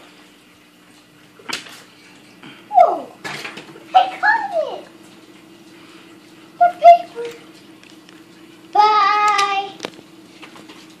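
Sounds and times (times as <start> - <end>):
young child yelling: 8.8 - 9.8.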